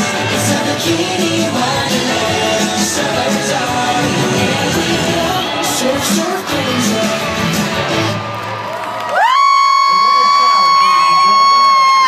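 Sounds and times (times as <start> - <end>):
stadium crowd cheering: 1.4 - 12.0
long high whoop: 8.8 - 12.0.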